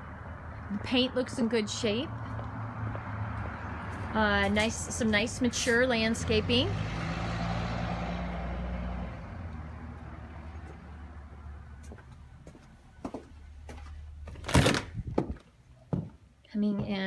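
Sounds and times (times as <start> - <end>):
vehicle passing: 0.0 - 14.4.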